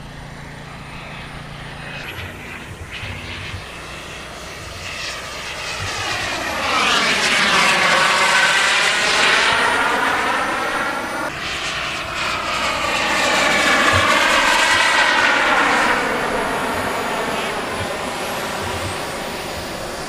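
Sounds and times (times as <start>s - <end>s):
model jet turbine flying past: 0.0s - 20.0s.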